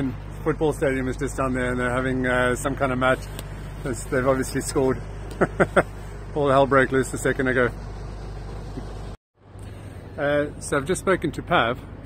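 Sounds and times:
low hum: 0.0s - 12.0s
outdoor background noise: 0.0s - 12.0s.

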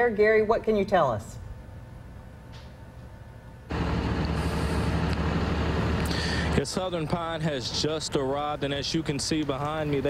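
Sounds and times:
truck engine idling: 3.7s - 10.0s.

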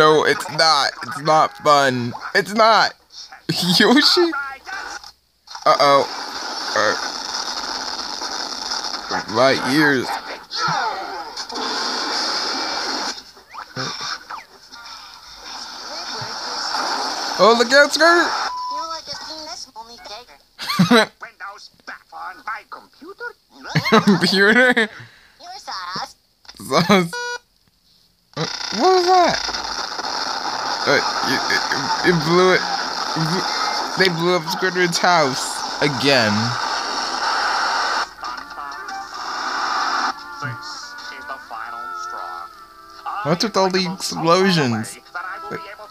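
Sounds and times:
distorted cartoon voices: 0.0s - 27.1s, 28.4s - 45.9s
cartoon voices: 9.1s - 11.4s, 13.7s - 16.8s, 23.3s - 24.9s, 28.4s - 29.4s, 30.8s - 36.6s.

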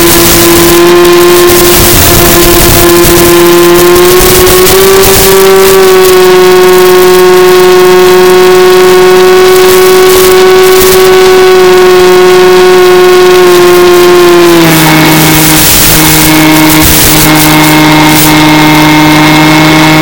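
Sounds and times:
air rush: 0.0s - 20.0s
electric motor propeller whine: 0.0s - 20.0s.

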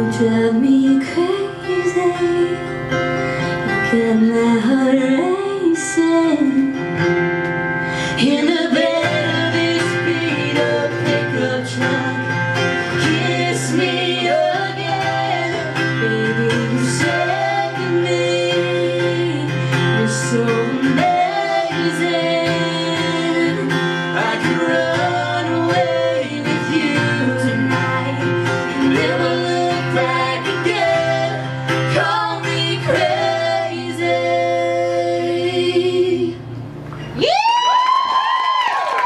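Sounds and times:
woman singing: 0.0s - 3.0s, 3.7s - 7.0s, 8.0s - 36.5s
strummed acoustic guitar: 0.0s - 36.8s
audience whooping and cheering: 37.0s - 39.0s.

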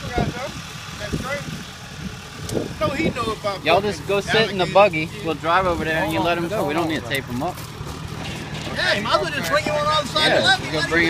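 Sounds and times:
men talking: 0.0s - 1.8s, 2.4s - 11.0s
vehicle engine idling: 0.0s - 11.0s.

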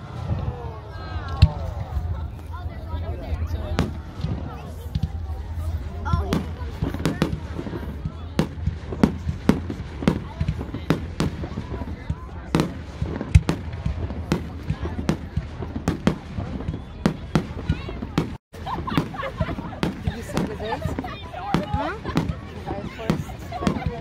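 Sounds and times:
fireworks bangs and crackles: 0.0s - 24.0s.

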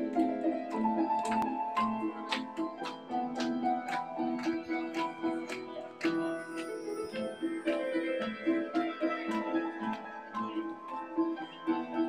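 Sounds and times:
nylon-string guitar melody: 0.0s - 12.0s.

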